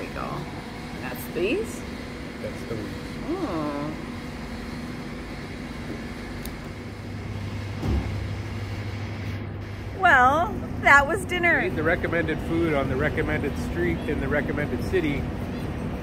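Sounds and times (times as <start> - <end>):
woman talking: 0.0 - 1.8, 3.2 - 4.0, 10.0 - 11.7
low mechanical hum: 0.0 - 16.0.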